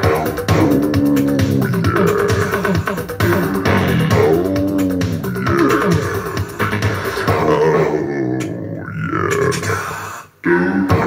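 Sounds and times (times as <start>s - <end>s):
song playing through speakers: 0.0s - 8.0s.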